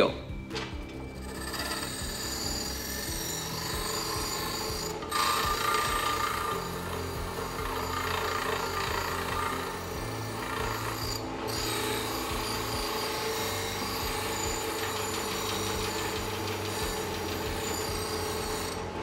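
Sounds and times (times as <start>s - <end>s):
wire wheel scouring steel: 0.0s - 19.0s.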